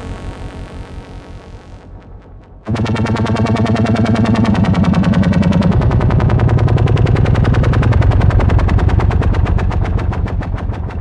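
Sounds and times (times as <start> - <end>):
pulsing synthesizer tone: 0.0 - 11.0.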